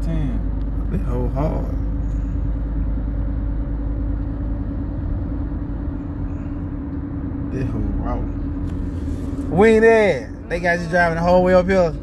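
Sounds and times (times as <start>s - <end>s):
car rumble from inside cabin: 0.0s - 12.0s
constant droning hum: 0.0s - 12.0s.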